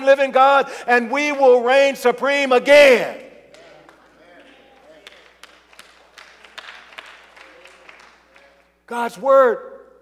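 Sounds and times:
scattered hand claps: 0:03.5 - 0:08.8.

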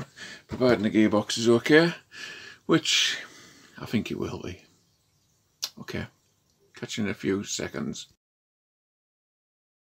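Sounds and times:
person speaking: 0:00.0 - 0:04.7.

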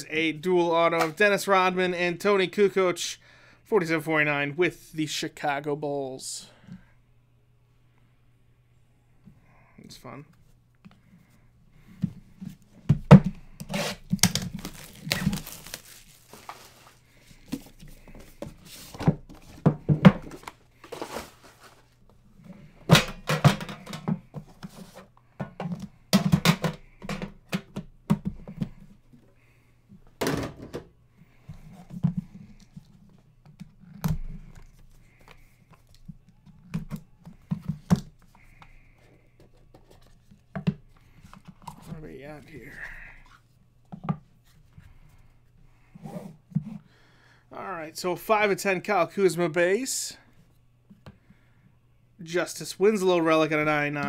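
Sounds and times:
boxes bumping and scraping on table: 0:11.9 - 0:29.0.

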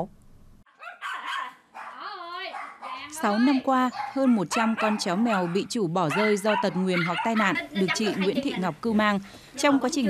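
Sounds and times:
dog barking: 0:00.7 - 0:07.6
dog yelping: 0:00.7 - 0:08.3.

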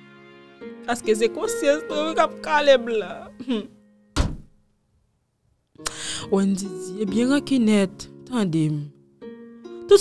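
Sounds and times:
sustained music chord: 0:00.0 - 0:04.1
woman's voice: 0:00.9 - 0:03.7, 0:06.0 - 0:09.0
dull thump: 0:04.2 - 0:04.6.

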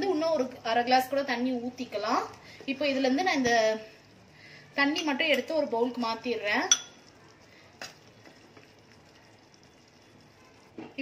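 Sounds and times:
metal spoon clinking on pot: 0:06.6 - 0:07.1.

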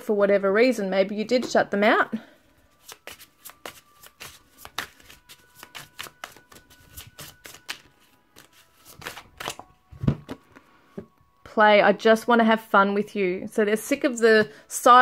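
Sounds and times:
cards being shuffled: 0:02.8 - 0:10.5.

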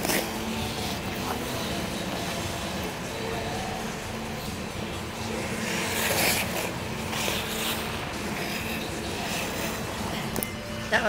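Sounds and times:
skate blades scraping on ice: 0:00.0 - 0:02.4, 0:05.4 - 0:10.2.

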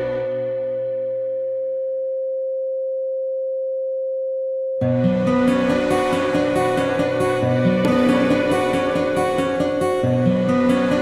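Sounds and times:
steady sine tone: 0:00.0 - 0:11.0.

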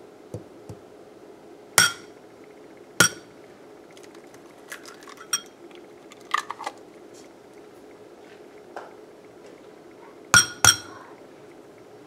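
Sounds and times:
clinks on glass bowl: 0:01.8 - 0:02.1, 0:03.0 - 0:03.3, 0:10.4 - 0:11.0.

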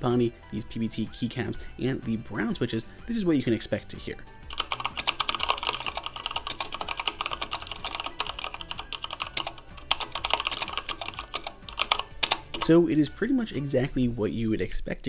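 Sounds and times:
fast mechanical keyboard typing: 0:04.5 - 0:12.8.

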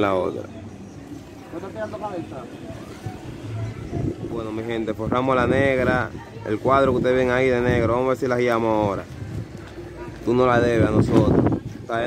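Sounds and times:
voices talking quietly: 0:00.0 - 0:12.0.

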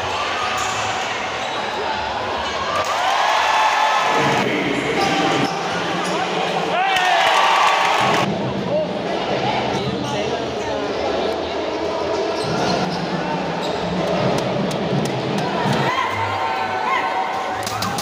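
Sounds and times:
crowd chatter and shouts: 0:00.0 - 0:18.0
shoes squeaking on court: 0:12.3 - 0:14.0.

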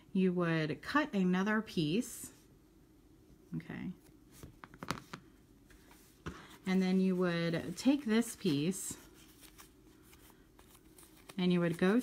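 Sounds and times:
faint rustling of yarn: 0:03.3 - 0:12.0.

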